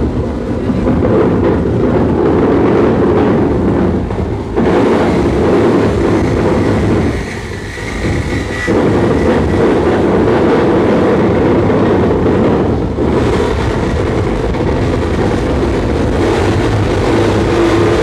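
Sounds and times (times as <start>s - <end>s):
harsh noise distortion: 0.0s - 18.0s.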